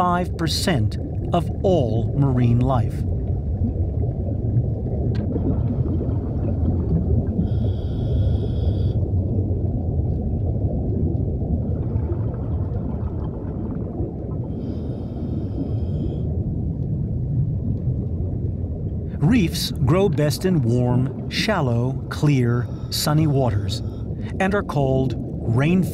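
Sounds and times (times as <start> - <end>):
underwater rumble and bubbles: 0.0 - 25.9
scuba regulator inhalation hiss: 7.4 - 9.0, 14.6 - 16.2.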